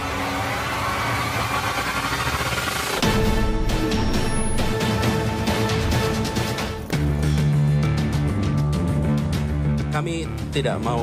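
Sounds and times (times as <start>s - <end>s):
theme music: 0.0s - 11.0s.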